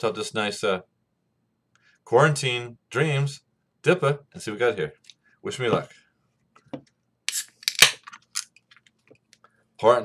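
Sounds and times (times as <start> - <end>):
can tab snapping: 7.3 - 8.4.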